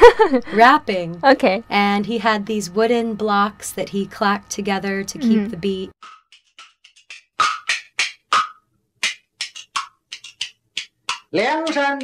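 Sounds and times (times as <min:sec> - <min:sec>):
wooden clappers clacking: 0:06.0 - 0:12.0.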